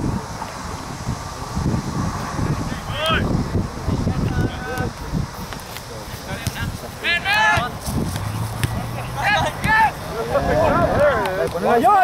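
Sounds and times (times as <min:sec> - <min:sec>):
wind noise on microphone: 0:00.0 - 0:12.0
men shouting calls: 0:02.6 - 0:05.0, 0:06.4 - 0:07.8, 0:08.7 - 0:12.0.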